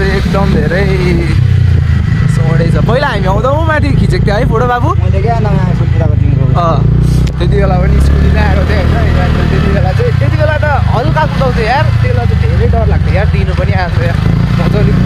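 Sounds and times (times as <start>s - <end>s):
people talking: 0.0s - 1.4s, 2.2s - 15.0s
motorcycle engine rumble: 0.0s - 15.0s.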